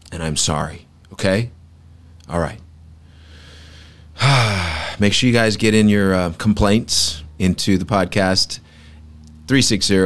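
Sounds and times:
quiet breath in: 3.0s - 4.1s
man sighing: 3.4s - 5.0s.

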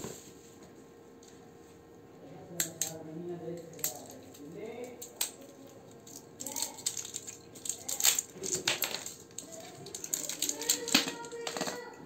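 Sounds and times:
plastic and metal parts clattering: 3.7s - 12.0s.

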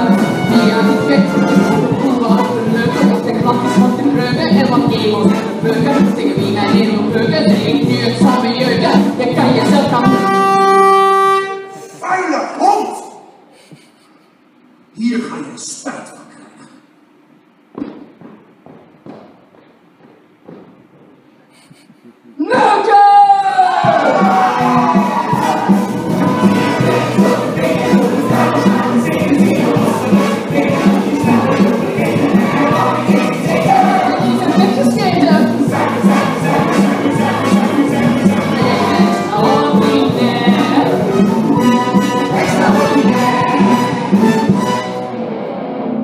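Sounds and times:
orchestra playing song accompaniment: 0.0s - 7.1s, 9.4s - 11.6s, 24.2s - 45.4s
knocks and thumps: 17.7s - 21.3s.

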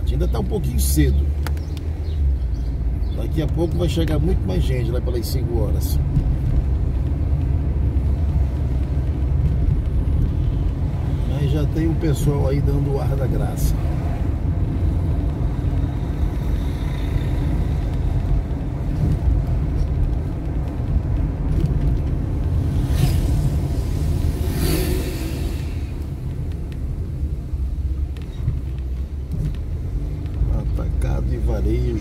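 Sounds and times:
car engine and road rumble: 0.0s - 32.0s
loud rushing noise: 22.6s - 26.2s.

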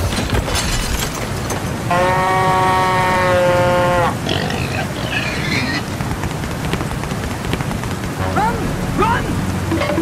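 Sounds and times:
rain hiss: 0.7s - 10.0s.

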